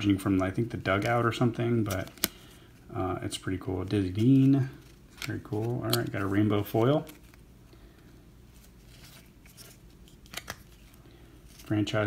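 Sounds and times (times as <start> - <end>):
cards rustling and sliding: 0.0 - 2.7, 3.5 - 12.0.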